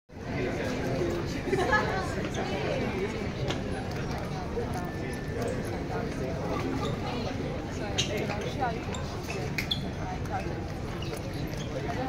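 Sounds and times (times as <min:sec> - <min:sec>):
crowd chatter: 0:00.1 - 0:12.0.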